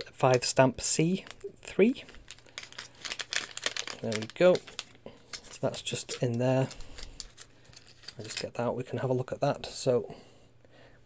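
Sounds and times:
packaging crinkling: 1.1 - 8.6.

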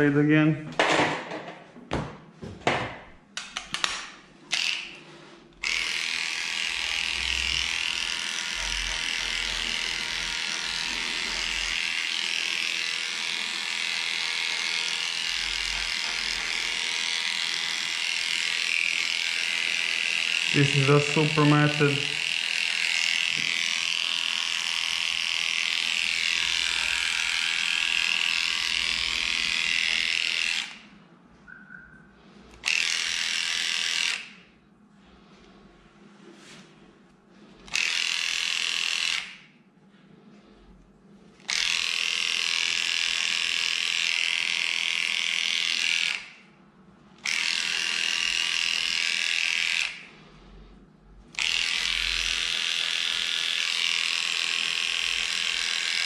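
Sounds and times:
electric clippers buzzing: 4.5 - 5.0, 5.6 - 30.9, 32.6 - 34.5, 37.7 - 39.5, 41.4 - 46.4, 47.2 - 50.1, 51.3 - 56.0.

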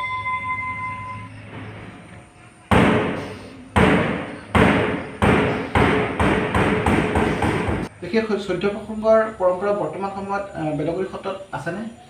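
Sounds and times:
bell-like ring: 0.0 - 1.4.

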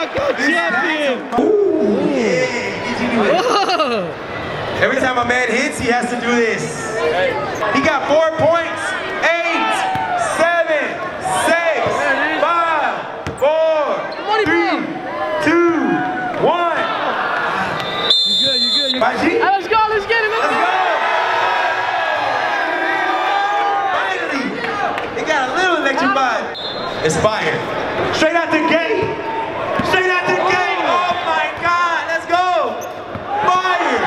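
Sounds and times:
crowd voices in hall: 0.0 - 34.0.

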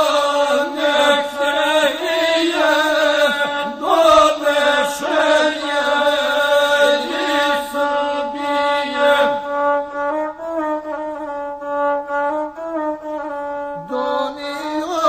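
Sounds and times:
person chanting a song: 0.0 - 9.7, 13.8 - 15.0
bowed one-string fiddle: 0.0 - 15.0.

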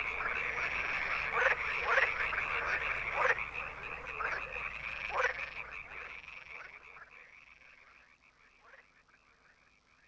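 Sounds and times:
small animals croaking chorus: 0.0 - 10.0.

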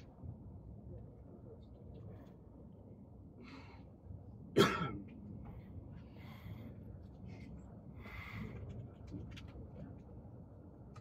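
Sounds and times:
low steady background rumble: 0.0 - 11.0
sharp cough: 4.6 - 5.0.

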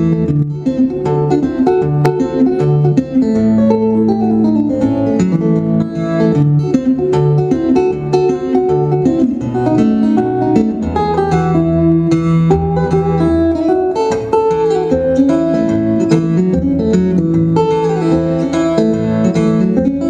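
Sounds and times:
solo guitar playing: 0.0 - 20.0.

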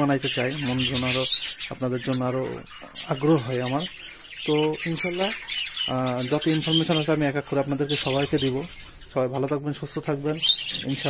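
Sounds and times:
budgerigars chirping: 0.0 - 11.0
person talking: 4.5 - 11.0.

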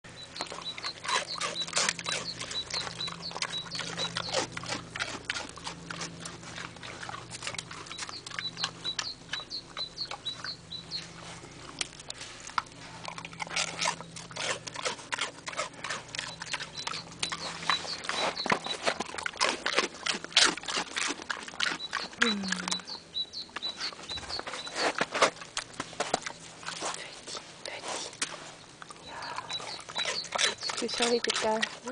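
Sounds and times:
pig crunching dry rusk: 0.1 - 31.9.

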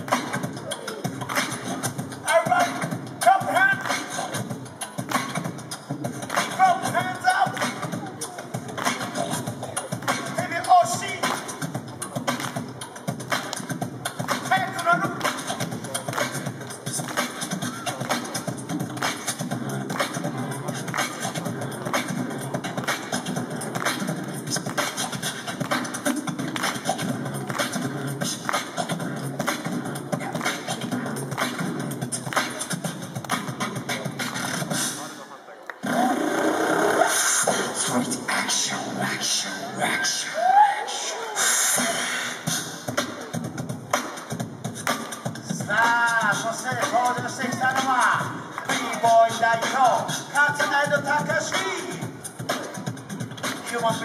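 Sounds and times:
beatboxing through speakers: 0.0 - 54.0.

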